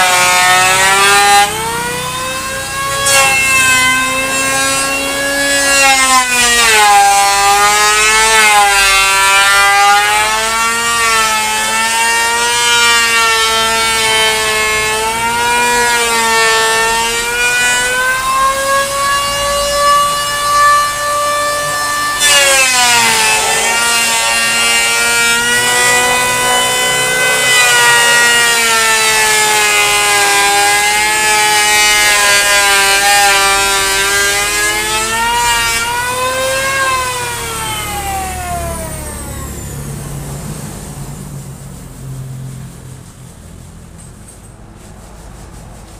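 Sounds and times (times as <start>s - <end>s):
electric hand planer whining: 0.0s - 40.9s.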